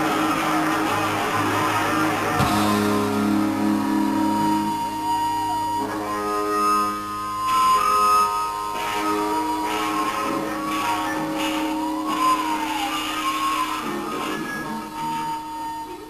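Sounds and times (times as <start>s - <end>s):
bass guitar: 0.0s - 16.0s
electric guitar chords: 0.0s - 16.0s.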